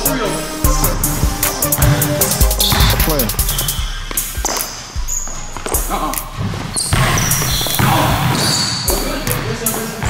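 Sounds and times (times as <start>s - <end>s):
basketball dribbling: 1.8s - 10.0s
shoe squeaks: 2.6s - 10.0s.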